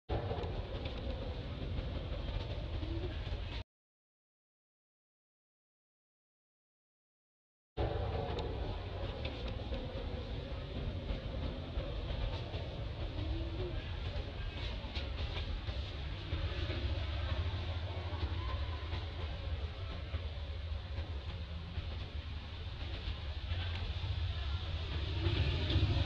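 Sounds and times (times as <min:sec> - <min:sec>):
low rumble and hiss: 0:00.1 - 0:03.6, 0:07.8 - 0:26.0.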